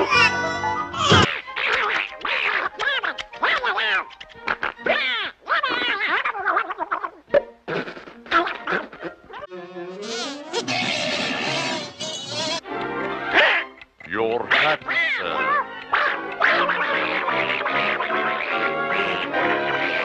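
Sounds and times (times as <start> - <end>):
squawking cartoon duck voice: 1.2 - 7.2, 14.4 - 20.0
cartoon music: 8.2 - 20.0.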